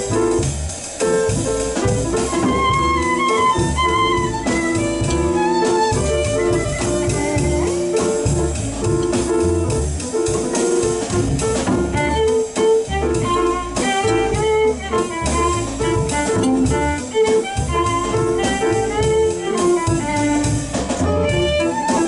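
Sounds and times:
jazz band playing: 0.0 - 22.0
bowed violin melody: 1.5 - 9.9, 10.8 - 22.0.

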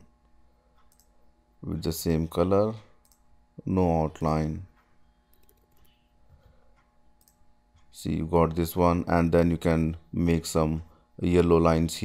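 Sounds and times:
computer mouse clicks: 0.8 - 1.2, 3.0 - 3.2, 5.3 - 6.0, 7.2 - 7.4.

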